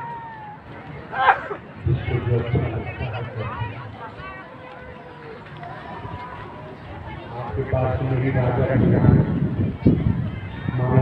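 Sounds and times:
man speaking over sound system: 1.8s - 3.7s, 7.3s - 9.4s, 10.8s - 11.0s.

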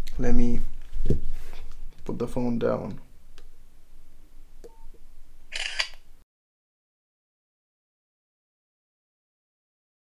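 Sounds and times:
phone beep: 4.7s - 5.0s
camera shutter sound: 5.5s - 6.0s.

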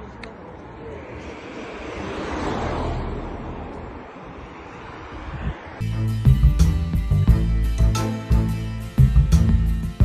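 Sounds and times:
vehicle passing by: 0.0s - 6.0s.

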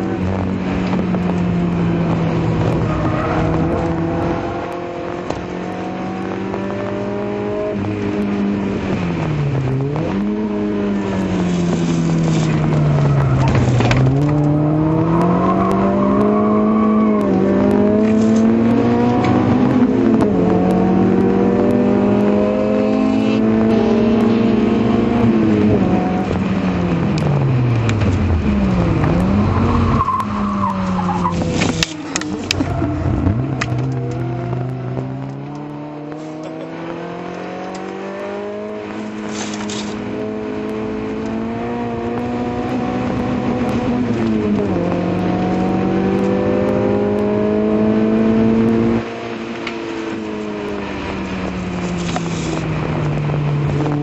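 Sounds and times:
car engine revving in cabin: 0.0s - 54.0s.

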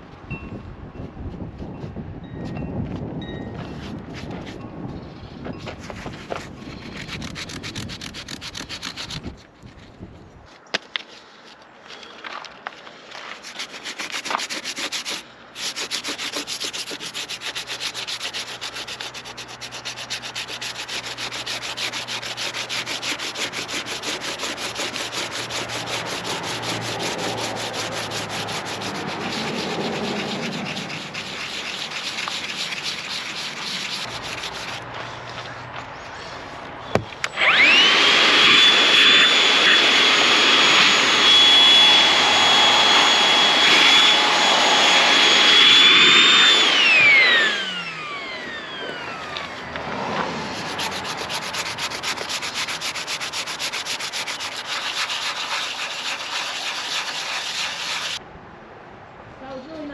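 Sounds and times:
sandpaper rasping on fibreglass: 5.6s - 9.8s, 13.2s - 37.2s, 50.4s - 58.2s.

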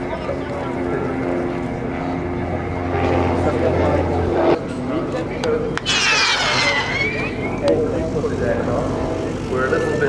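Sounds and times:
propeller plane engine droning: 0.0s - 10.0s.

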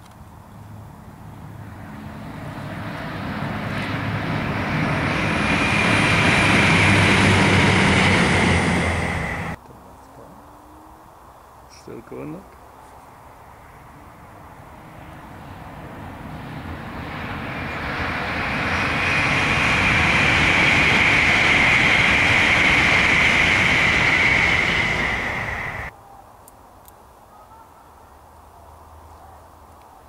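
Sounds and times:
electric train passing: 0.4s - 9.6s, 11.7s - 26.0s.

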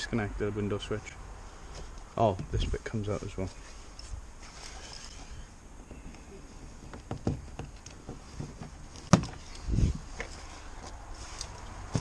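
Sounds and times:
dull thump: 6.9s - 9.4s.

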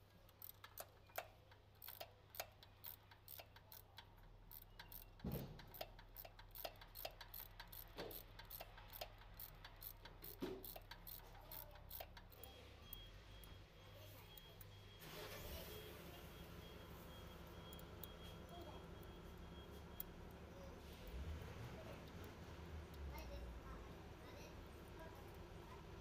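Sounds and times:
ratchet wrench clicking: 0.3s - 13.0s.

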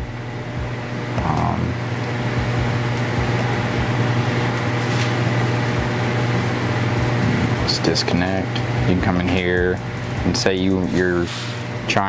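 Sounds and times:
mechanical hum with low drone: 0.0s - 12.0s.

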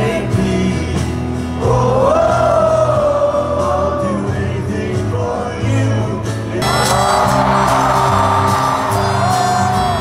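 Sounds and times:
live band music: 0.0s - 10.0s
person singing: 6.6s - 10.0s.

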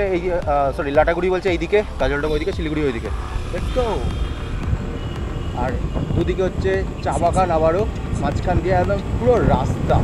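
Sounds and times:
wind and road noise rumble: 0.0s - 10.0s.

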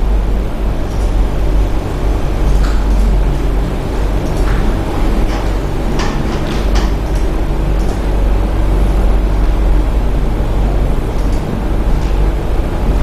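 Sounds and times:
loud low hum: 0.0s - 13.0s.

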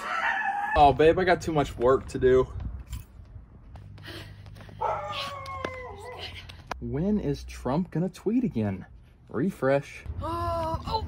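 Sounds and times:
animal howl: 0.0s - 0.8s, 4.8s - 6.2s.

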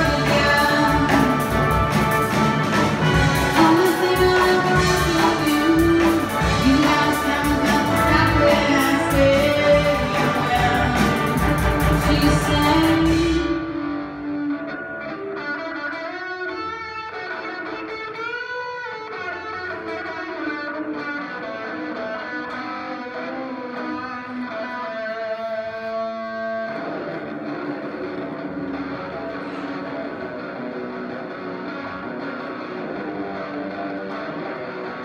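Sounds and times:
band playing: 0.0s - 35.0s
electric guitar sustained notes: 0.0s - 35.0s.

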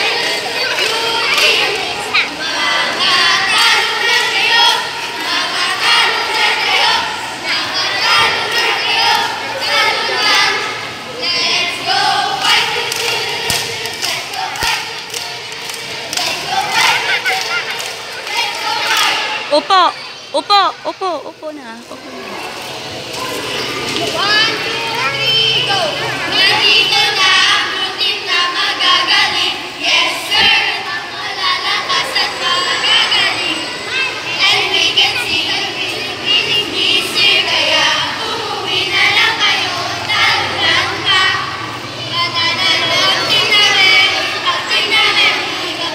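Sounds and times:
children chanting together: 0.0s - 20.3s, 22.1s - 45.9s.

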